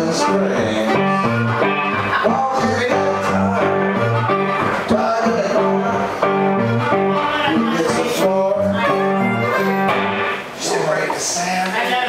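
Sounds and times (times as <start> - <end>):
blues harmonica: 0.0 - 10.5
guitar: 0.0 - 12.0.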